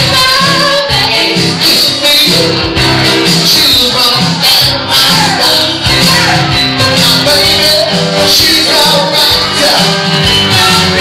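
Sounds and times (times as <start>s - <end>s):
piano playing rock music: 0.0s - 11.0s.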